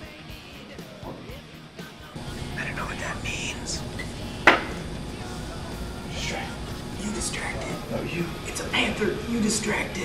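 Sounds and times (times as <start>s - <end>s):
low hum: 2.2s - 8.5s
sharp knock: 4.4s - 4.8s.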